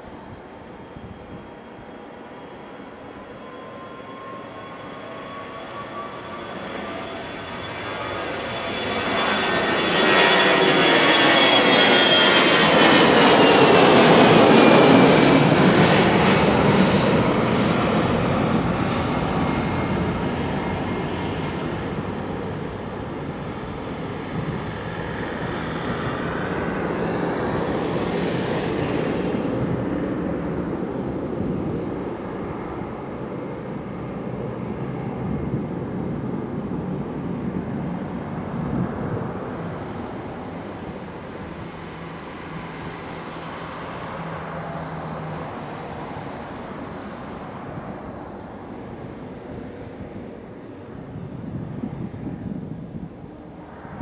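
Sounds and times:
jet engines at takeoff: 0.0s - 54.0s.

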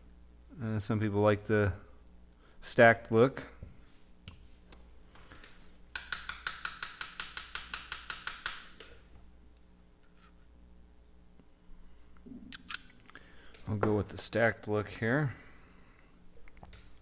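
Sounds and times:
metal tool tapping on bench: 6.0s - 8.6s.

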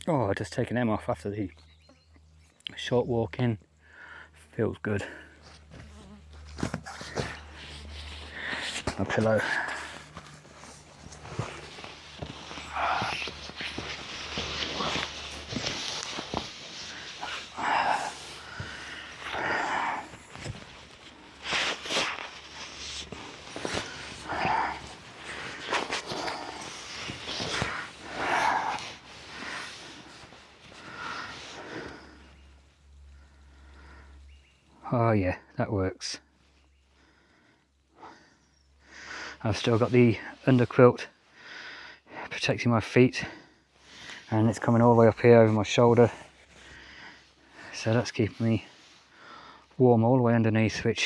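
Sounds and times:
fabric rustling: 5.5s - 33.0s.

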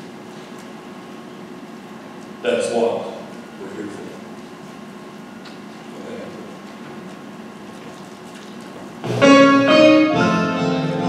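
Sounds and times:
instrumental piano music: 9.0s - 11.0s.

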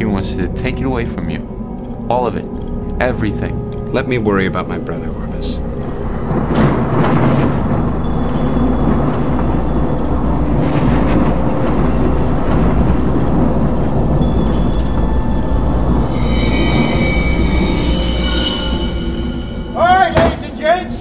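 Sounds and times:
low rumbling drone: 0.0s - 21.0s
faint high ticking: 0.6s - 19.8s
sharp hit: 14.1s - 21.0s.

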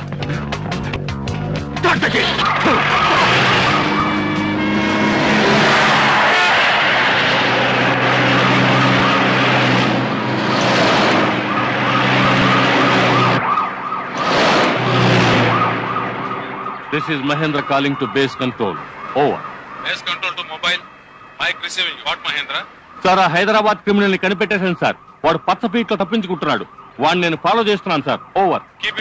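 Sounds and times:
car engines driven hard: 0.0s - 29.0s
police siren pulsing: 1.8s - 29.0s
car speeding past: 2.4s - 16.7s.

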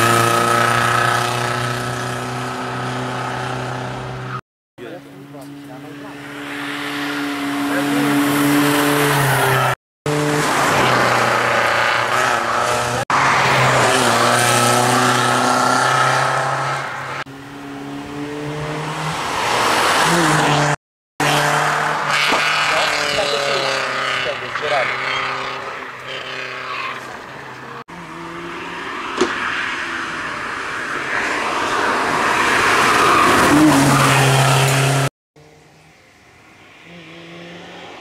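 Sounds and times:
rally car engine at high revs: 0.0s - 4.4s, 5.3s - 30.4s, 31.1s - 35.7s.

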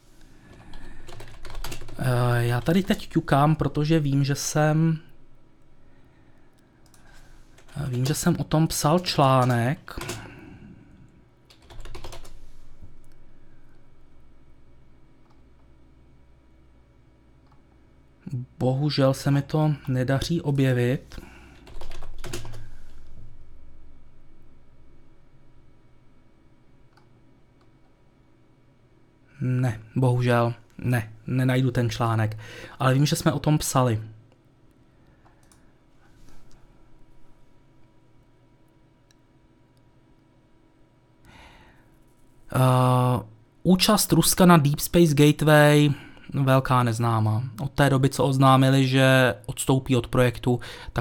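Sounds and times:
computer keyboard typing: 0.5s - 3.6s, 6.8s - 10.4s, 11.5s - 12.4s, 21.5s - 23.1s, 35.2s - 35.6s.

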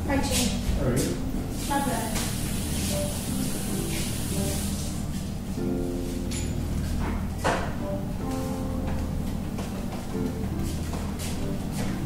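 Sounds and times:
steady low hum: 0.0s - 12.0s
acoustic guitar picking: 1.2s - 12.0s.

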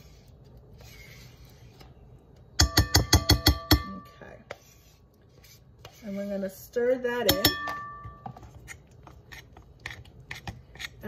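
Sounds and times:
spoon clinking against glass bowl: 7.2s - 8.2s.

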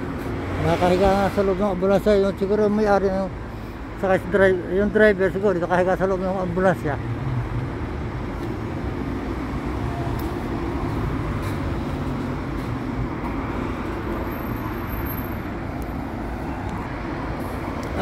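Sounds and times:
road traffic rumble: 0.0s - 18.0s.

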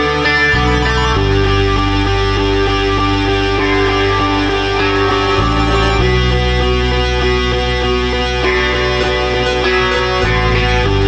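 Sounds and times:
instrumental rock music: 0.0s - 11.0s.

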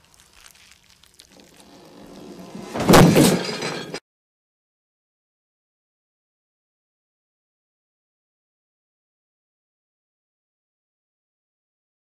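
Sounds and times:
loud shattering crash: 1.9s - 4.0s.

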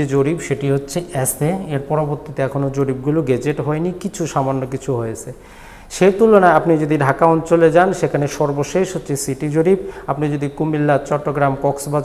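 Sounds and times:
man lecturing: 0.0s - 12.0s
quick intake of breath: 5.4s - 5.9s, 9.8s - 10.1s.

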